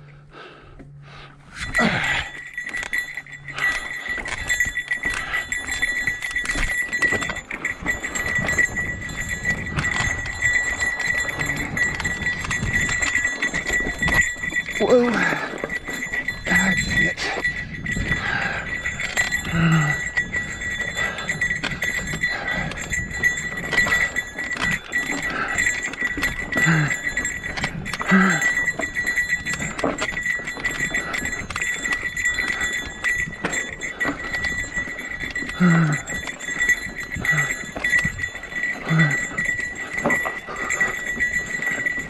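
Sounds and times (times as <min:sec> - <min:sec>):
bike rattling over rocks: 0:01.6 - 0:42.0
rider grunting: 0:01.6 - 0:42.0.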